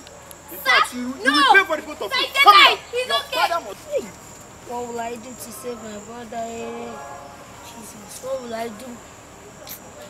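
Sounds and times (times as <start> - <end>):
person speaking loudly: 0.5 - 4.1.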